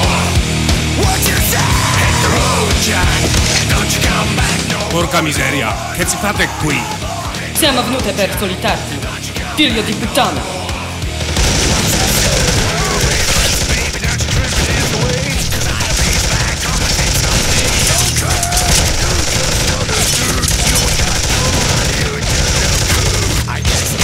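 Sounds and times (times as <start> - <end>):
automatic gunfire: 11.2 - 24.0.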